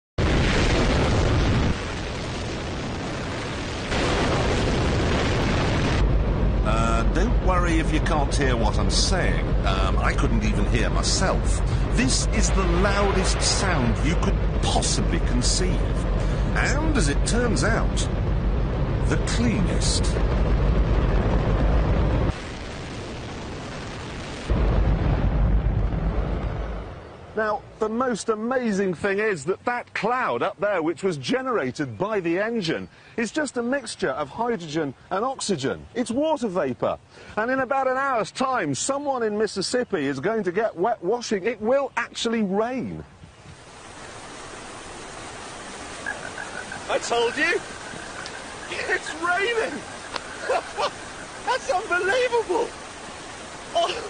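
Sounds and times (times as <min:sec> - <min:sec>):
rocket engine roaring: 0:00.2 - 0:27.4.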